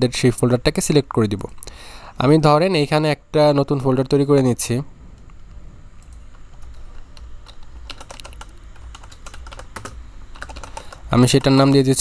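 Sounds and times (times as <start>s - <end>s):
keyboard typing clicks: 6.0s - 11.8s.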